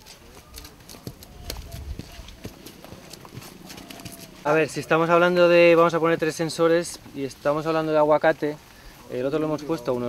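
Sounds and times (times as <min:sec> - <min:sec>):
faint voices: 0:00.0 - 0:06.5.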